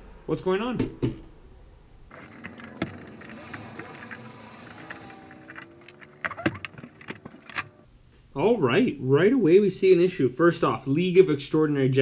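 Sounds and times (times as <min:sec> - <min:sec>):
plastic cover scraping and rattling: 0:02.1 - 0:07.8.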